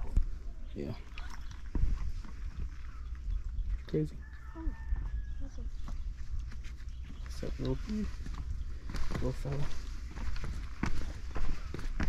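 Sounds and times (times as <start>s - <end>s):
footsteps on stone path: 1.4s - 12.0s.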